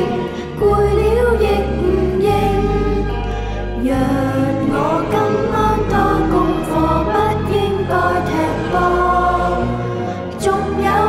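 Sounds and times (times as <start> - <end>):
children's choir singing: 0.0 - 11.0
instrumental backing with bass: 0.0 - 11.0.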